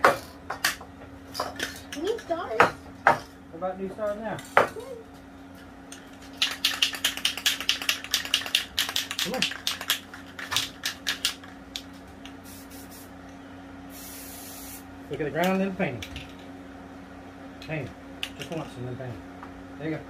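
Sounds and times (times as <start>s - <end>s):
steady spray paint hiss: 12.3s - 13.2s, 13.9s - 14.9s
spray paint can short bursts: 12.4s - 13.1s, 13.9s - 14.8s.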